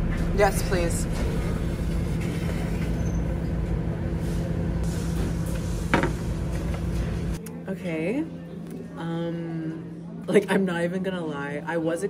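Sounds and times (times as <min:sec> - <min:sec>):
low machine hum: 0:00.0 - 0:07.4.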